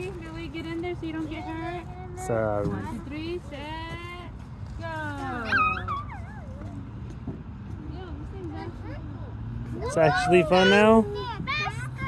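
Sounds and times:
children squealing and calling out: 0:05.3 - 0:07.1.

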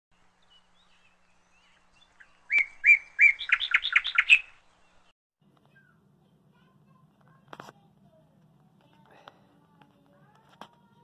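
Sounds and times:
bird singing: 0:00.3 - 0:05.1
faint bird chirps: 0:00.4 - 0:05.1.

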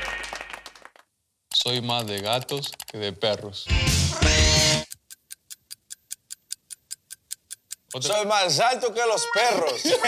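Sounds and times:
clock ticking: 0:01.6 - 0:03.4, 0:04.8 - 0:08.6.

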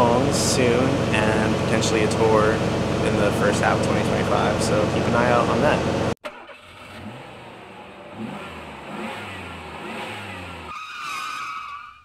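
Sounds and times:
engine revving: 0:00.0 - 0:10.8.

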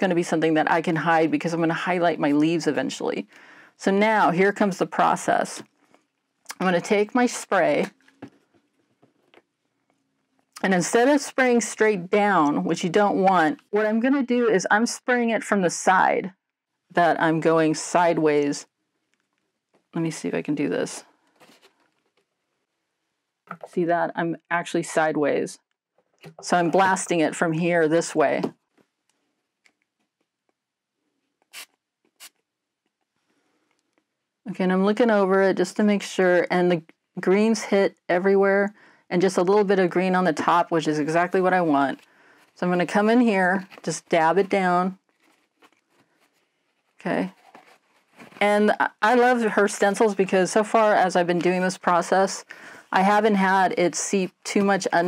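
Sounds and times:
faint brief hiss: 0:31.5 - 0:32.3
paper towel rustling: 0:41.6 - 0:50.2.

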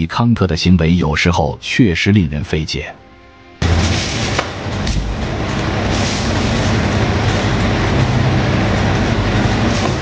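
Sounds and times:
truck engine drone: 0:03.0 - 0:10.0
road noise: 0:03.6 - 0:10.0.

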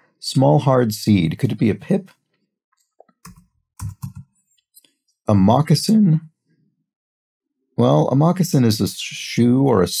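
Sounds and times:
keyboard typing: 0:03.0 - 0:04.3.

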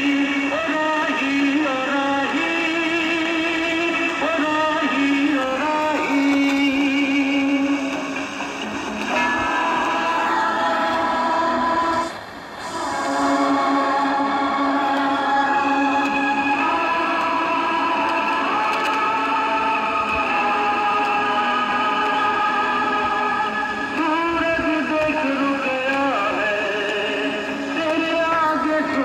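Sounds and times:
music with singing from small radio: 0:00.0 - 0:29.0.

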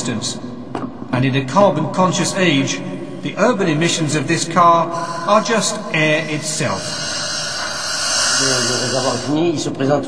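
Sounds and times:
compressed air hissing: 0:02.9 - 0:09.6.

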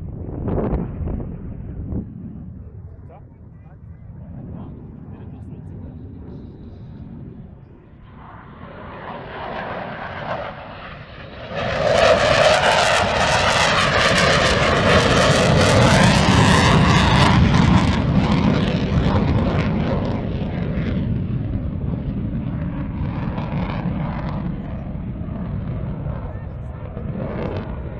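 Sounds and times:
jet engine roar: 0:00.0 - 0:27.9.

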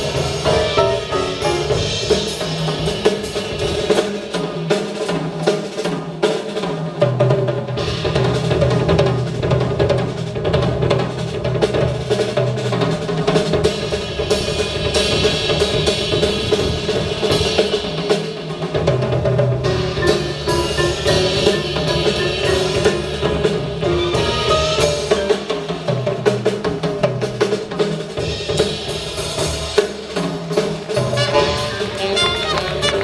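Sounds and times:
upright bass: 0:00.0 - 0:02.2, 0:19.7 - 0:25.2
grand piano: 0:00.0 - 0:04.0, 0:19.6 - 0:27.7, 0:30.9 - 0:33.0
drum kit cymbals and snare: 0:00.0 - 0:33.0.

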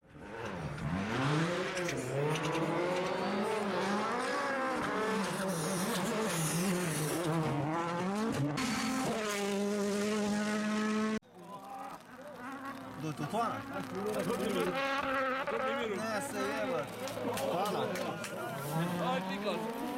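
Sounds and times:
rally car engine at full throttle: 0:00.0 - 0:19.9.

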